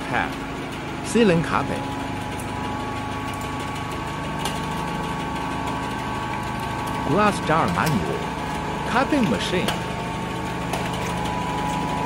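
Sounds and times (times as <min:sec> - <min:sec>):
machine motor hum: 0:00.0 - 0:12.0.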